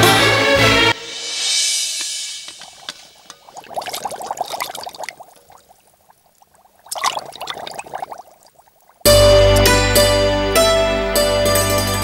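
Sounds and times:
hand squishing food in liquid: 3.3s - 9.1s.

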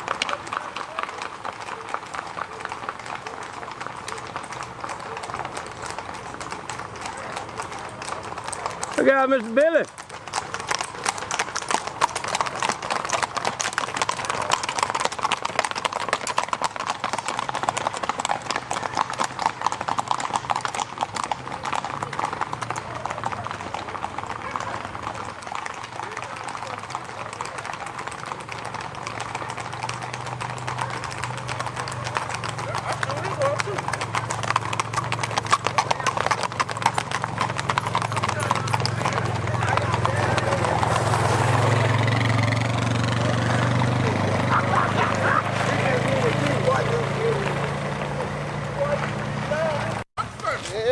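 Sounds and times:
horse hooves on asphalt: 0.0s - 50.9s
vehicle engine hum: 10.2s - 50.6s.

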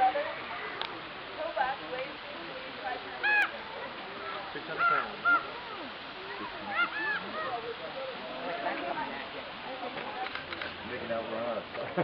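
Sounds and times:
crow cawing: 3.2s - 3.6s, 4.2s - 5.6s, 6.7s - 7.5s.

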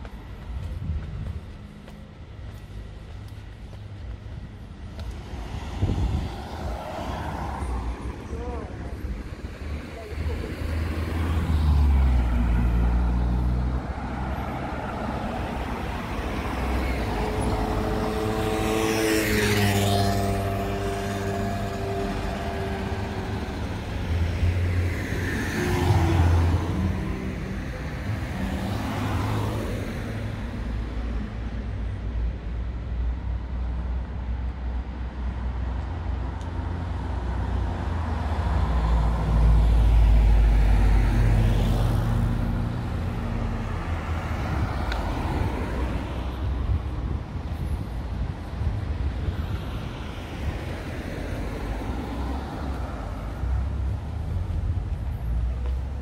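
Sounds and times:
low traffic rumble: 0.0s - 56.0s
vehicles passing: 0.0s - 56.0s.

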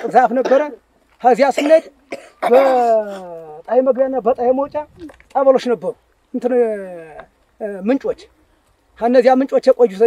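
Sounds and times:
man clearing throat: 0.0s - 0.8s, 1.6s - 3.4s
man speaking: 0.0s - 8.4s, 9.0s - 10.0s.

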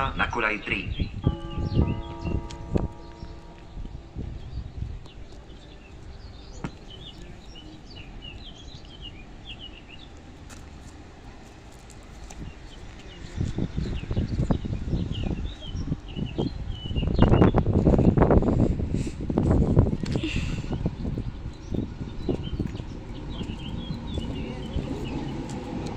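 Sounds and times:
small birds chirping: 0.7s - 10.2s, 20.0s - 25.9s
passenger train approaching: 1.2s - 6.4s, 22.8s - 25.9s.

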